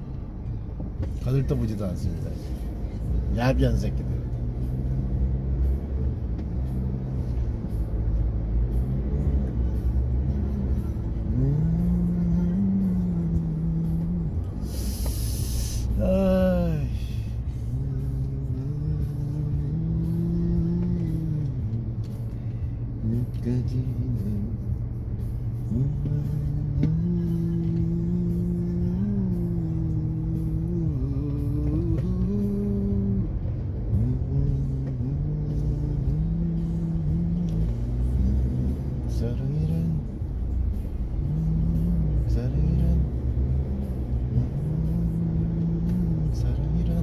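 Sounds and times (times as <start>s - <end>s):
low rumble of car cabin: 0.0s - 47.0s
man humming a slow tune: 4.0s - 47.0s.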